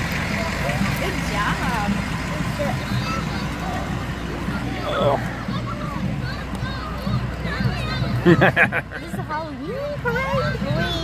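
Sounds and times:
fire truck engine droning: 0.0s - 11.0s
scattered voices: 0.0s - 11.0s.

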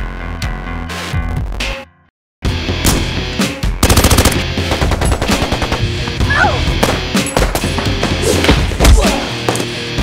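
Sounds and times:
driving music track: 2.5s - 10.0s
rapid automatic gunfire: 3.8s - 5.9s.

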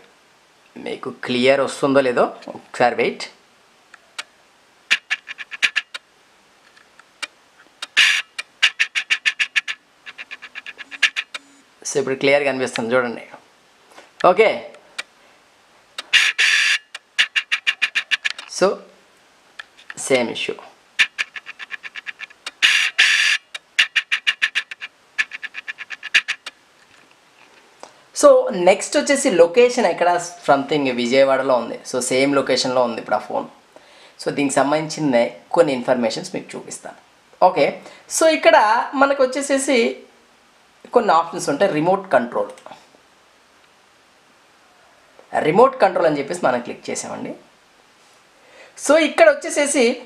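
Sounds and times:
mouse scroll wheel ticking: 4.9s - 6.0s, 7.8s - 11.6s, 17.0s - 18.4s, 21.0s - 26.5s
short bursts of hiss: 7.8s - 11.6s, 16.0s - 18.3s, 21.0s - 26.5s.

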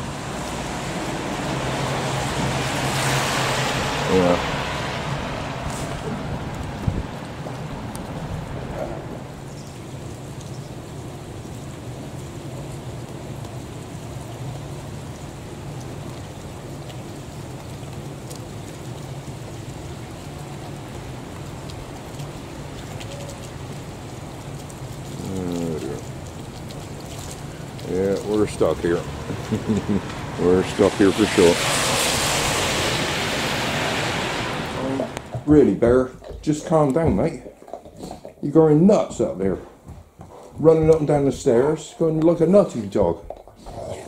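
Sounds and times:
rain falling on pavement: 0.0s - 44.0s.

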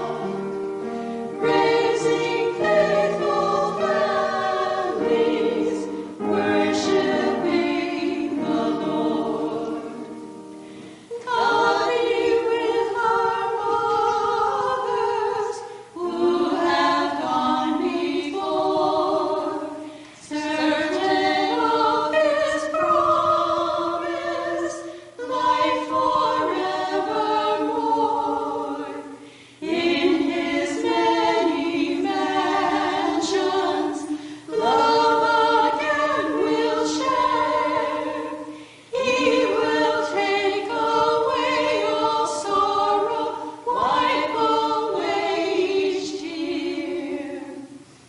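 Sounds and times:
women's vocal group singing: 0.0s - 48.0s.

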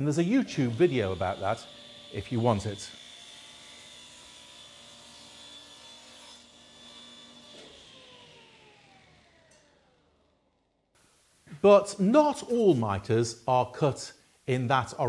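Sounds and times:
saw blade spinning down: 0.1s - 3.0s, 7.5s - 10.7s
table saw running: 0.1s - 10.5s.

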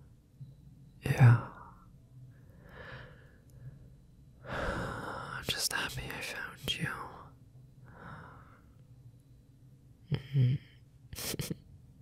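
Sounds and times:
man whispering: 1.0s - 1.9s, 5.1s - 7.4s.

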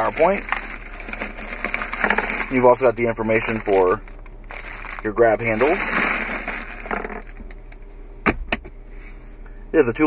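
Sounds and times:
plastic bag crinkling: 0.0s - 7.6s.

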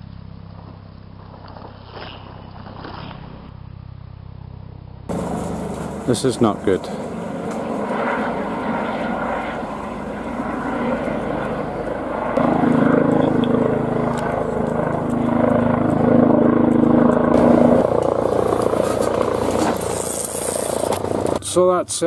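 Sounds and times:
helicopter flying past: 0.2s - 21.6s.

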